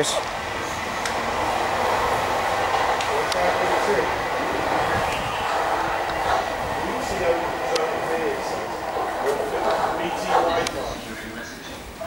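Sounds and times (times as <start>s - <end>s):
electric train pulling away: 0.0s - 12.0s.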